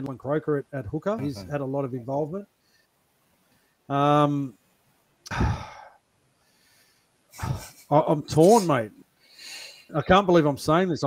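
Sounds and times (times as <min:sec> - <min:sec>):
man sighing: 0:05.3 - 0:06.0.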